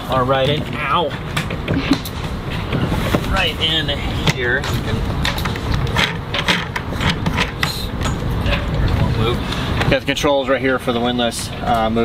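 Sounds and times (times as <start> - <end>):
wind rumble on microphone: 0.0 - 12.0
clicks and knocks of handling: 4.2 - 9.0.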